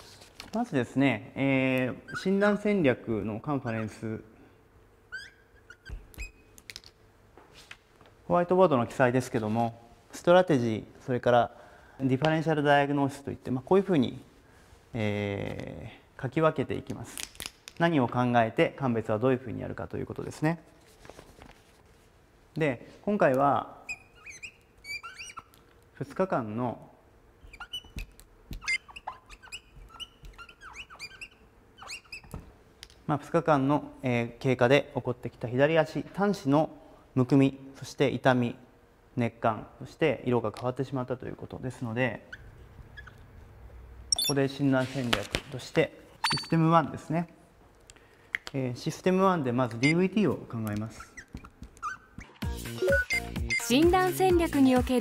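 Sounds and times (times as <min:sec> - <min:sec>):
marker squeaking on whiteboard: 0:01.8 - 0:02.7, 0:03.5 - 0:04.0, 0:05.1 - 0:07.0, 0:23.8 - 0:25.7, 0:27.4 - 0:32.4, 0:42.2 - 0:43.3, 0:44.1 - 0:44.4, 0:46.2 - 0:46.6, 0:49.7 - 0:50.2, 0:50.8 - 0:53.7.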